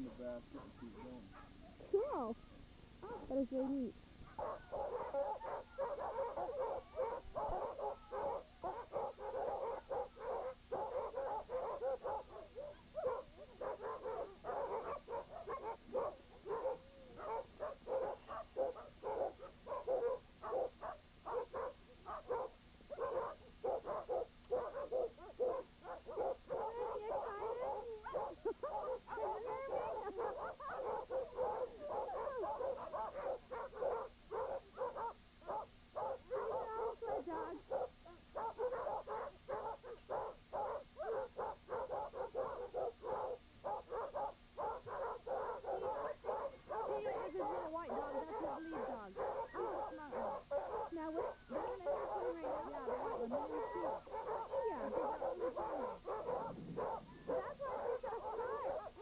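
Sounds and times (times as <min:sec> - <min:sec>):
sled dogs barking and yelping: 0:00.0 - 0:59.0.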